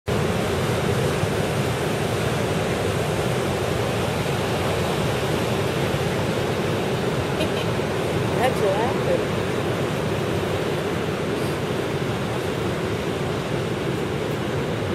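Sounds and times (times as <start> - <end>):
ocean surf breaking: 0.1 - 14.9.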